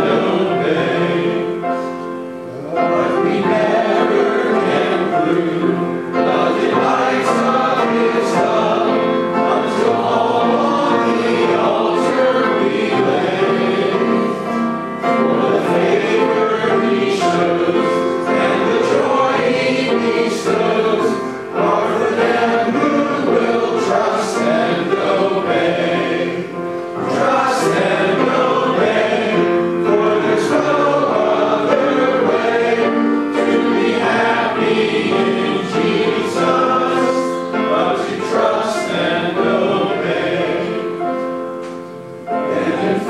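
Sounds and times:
congregation singing a hymn: 0.0s - 43.0s.

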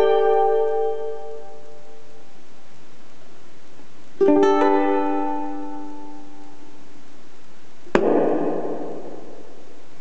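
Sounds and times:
percussive slap on ukulele: 7.9s - 9.2s.

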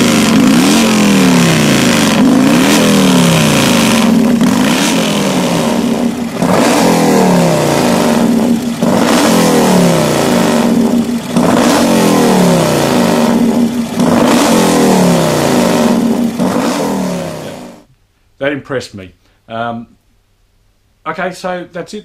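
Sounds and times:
motorcycle engine revving: 0.0s - 17.9s.

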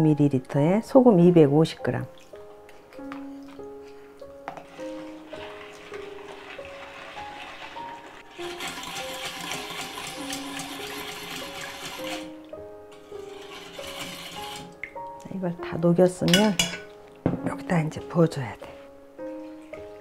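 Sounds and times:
light background music: 0.0s - 20.0s
spoon stirring water in bowl: 2.0s - 15.4s, 16.2s - 17.6s.

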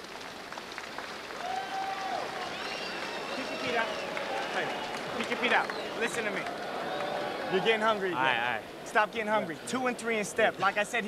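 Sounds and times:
crowd applauding and cheering: 0.0s - 10.2s.

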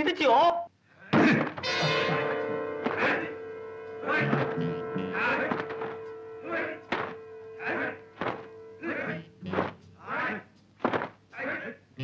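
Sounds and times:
film soundtrack music: 1.6s - 10.2s
sharp thuds: 8.2s - 8.5s, 10.8s - 11.2s.

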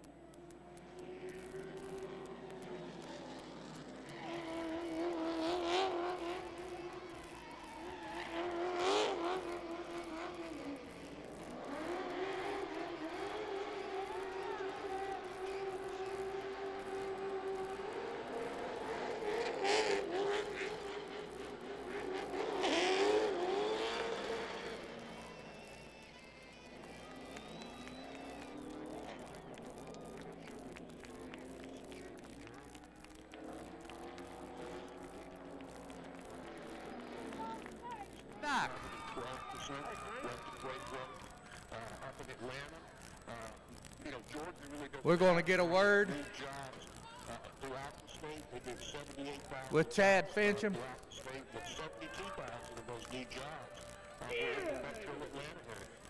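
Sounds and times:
car engine revving: 0.0s - 56.0s
tires squealing: 0.9s - 44.5s.

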